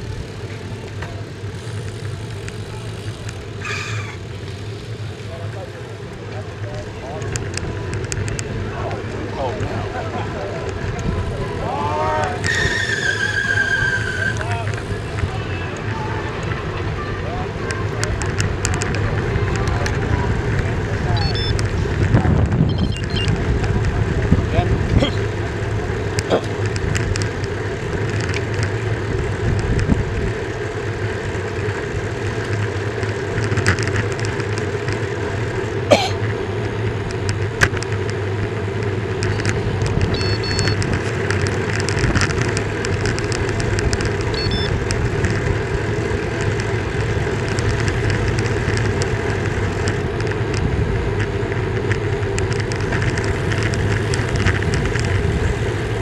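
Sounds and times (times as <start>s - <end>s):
bike tyre and wind noise: 0.0s - 56.0s
sharp clicks: 21.2s - 23.9s.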